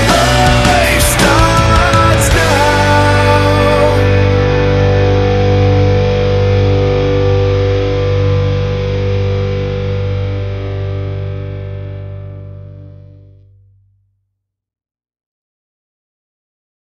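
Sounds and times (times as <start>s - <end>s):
distorted electric guitar chord: 0.0s - 13.6s
bass guitar: 0.0s - 14.1s.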